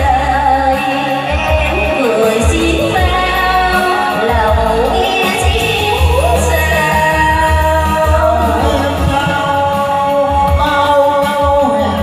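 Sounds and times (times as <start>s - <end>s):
amplified backing music: 0.0s - 12.0s
woman singing into a microphone: 0.0s - 12.0s.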